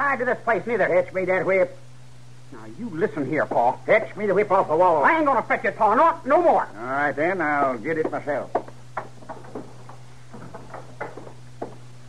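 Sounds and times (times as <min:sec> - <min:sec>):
steady low hum: 0:00.0 - 0:12.0
slow footsteps across a floor: 0:07.6 - 0:12.0.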